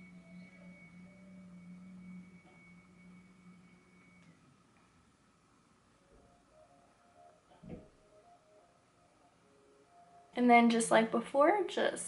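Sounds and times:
thin high tone: 0.0s - 4.8s
faint low hum: 0.0s - 12.0s.

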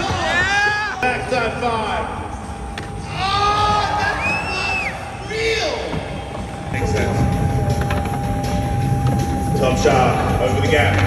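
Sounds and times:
people shouting and cheering: 0.0s - 1.4s, 3.0s - 7.3s
high whistle-like tone: 4.1s - 5.2s.

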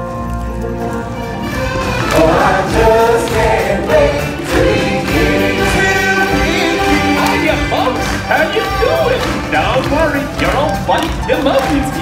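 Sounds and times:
choir singing with accompaniment: 0.6s - 8.3s.

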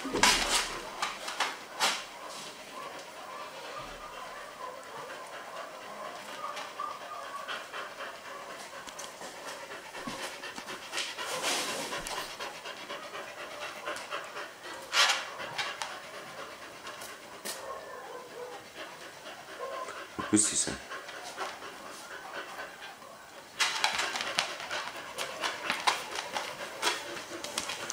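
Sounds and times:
dog panting rapidly: 0.1s - 27.9s.

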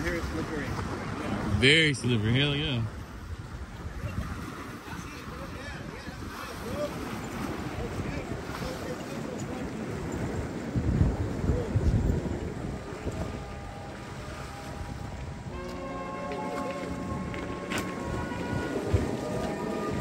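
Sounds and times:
small waves washing against rocks: 0.0s - 20.0s
wind buffeting microphone: 0.0s - 20.0s.

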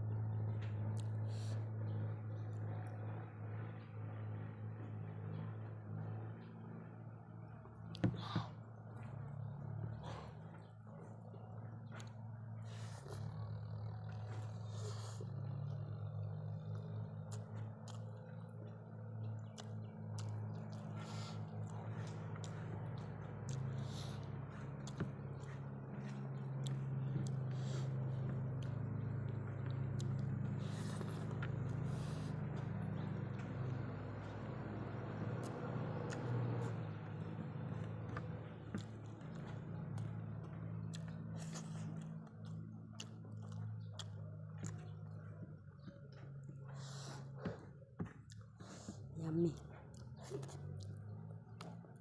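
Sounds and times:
steady low hum: 0.0s - 52.0s
person chewing: 7.9s - 49.1s, 49.9s - 52.0s
mouth smacks and clicks: 11.4s - 47.4s.

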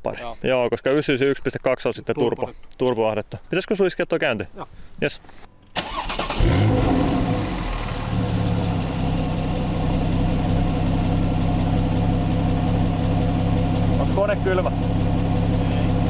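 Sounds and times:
car engine starting and idling: 5.8s - 16.0s.

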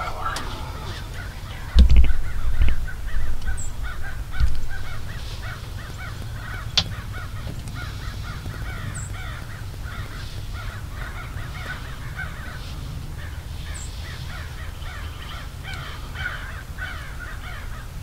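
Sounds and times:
steady low rumble: 0.0s - 13.5s
flock of birds calling: 0.0s - 18.0s.

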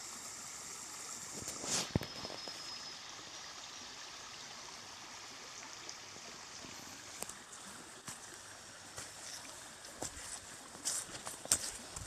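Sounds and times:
mountain stream flowing: 0.0s - 12.0s.

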